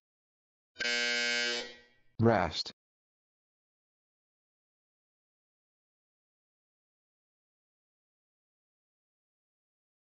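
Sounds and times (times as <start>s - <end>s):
electronic buzzer tone: 0.8s - 2.0s.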